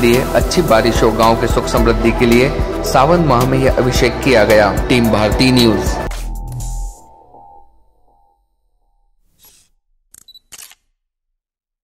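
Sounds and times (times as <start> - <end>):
camera shutter snaps: 9.4 - 10.9.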